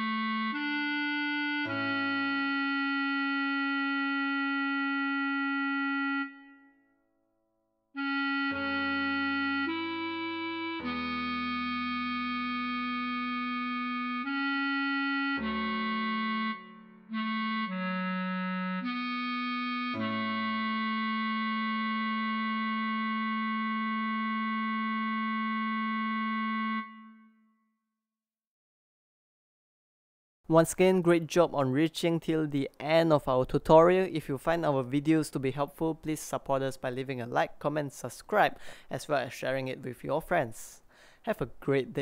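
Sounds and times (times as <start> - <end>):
bass clarinet long note: 0.0 - 6.8, 8.0 - 27.5.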